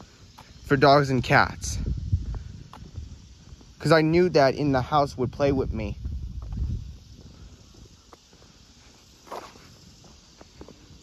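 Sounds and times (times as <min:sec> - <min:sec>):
footsteps on pavement: 0:00.0 - 0:11.0.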